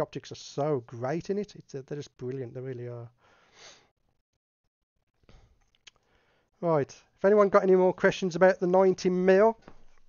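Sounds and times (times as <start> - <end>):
man breathing into microphone: 3.2 - 3.9.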